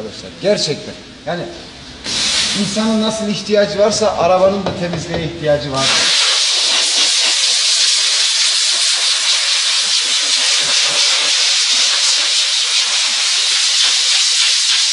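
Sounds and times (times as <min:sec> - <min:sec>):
steam wand hissing: 0:02.0 - 0:03.1, 0:05.8 - 0:14.9.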